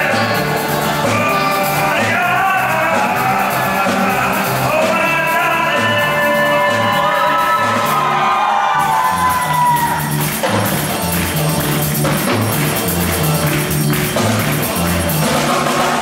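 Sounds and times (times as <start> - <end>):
man singing: 0.0 - 7.8, 10.5 - 16.0
drum kit beat: 0.0 - 16.0
low bass notes: 0.0 - 16.0.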